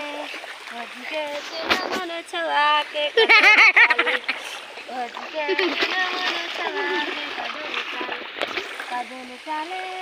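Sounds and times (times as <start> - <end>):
feet splashing through water: 0.0 - 10.0.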